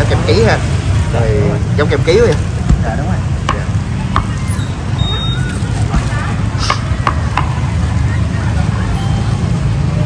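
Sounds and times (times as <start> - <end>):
crowd noise: 0.0 - 10.0
traffic noise: 0.0 - 10.0.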